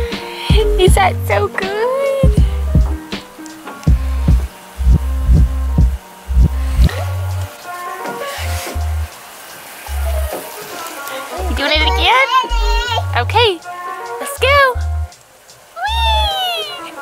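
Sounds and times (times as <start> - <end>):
music with bass and drum beat: 0.0 - 7.5, 8.4 - 9.2, 11.4 - 13.6, 14.4 - 15.2.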